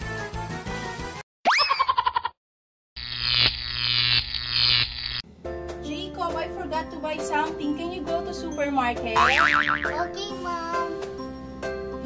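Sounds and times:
background music: 5.3 - 12.0
cartoon boing sound effect: 9.2 - 10.0.

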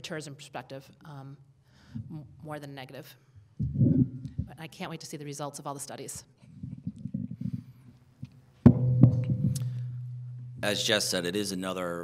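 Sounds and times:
steady low hum: 3.5 - 4.6, 8.6 - 11.7
microphone handling rumbles: 3.6 - 4.6, 6.5 - 10.7
sharp knock on microphone: 8.7 - 10.4.

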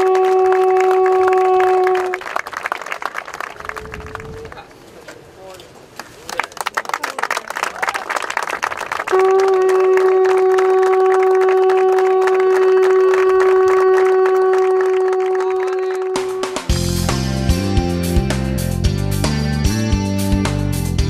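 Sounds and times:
long steady horn note: 0.0 - 2.2, 9.1 - 17.7
crowd applauding: 0.0 - 4.7, 6.0 - 16.8
music with guitar: 16.6 - 21.0.

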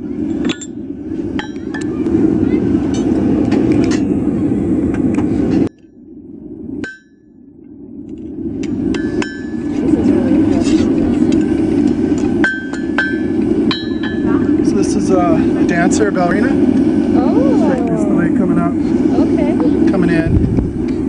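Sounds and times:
steady rushing noise: 0.0 - 21.0
hammer striking anvil: 6.8 - 7.3, 12.4 - 14.3.

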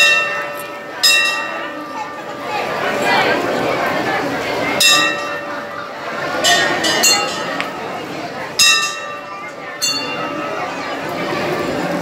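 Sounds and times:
metal bell ringing: 0.0 - 1.9, 4.8 - 5.8, 6.4 - 8.0, 8.6 - 10.9
crowd chatter: 0.0 - 12.0.

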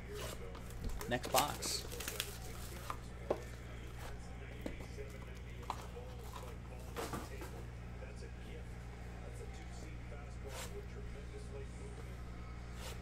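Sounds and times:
steady low hum: 1.8 - 13.0.

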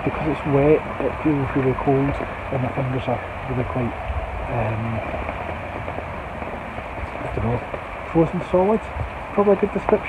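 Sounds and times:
rain on gazebo canopy: 0.0 - 10.0.

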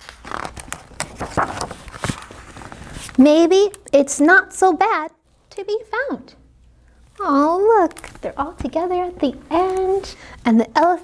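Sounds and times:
book pages turning: 0.0 - 3.9.

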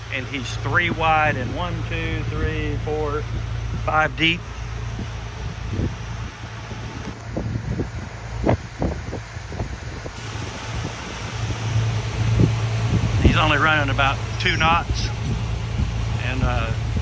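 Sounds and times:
boat engine droning: 0.0 - 17.0
wind buffeting microphone: 0.0 - 17.0.

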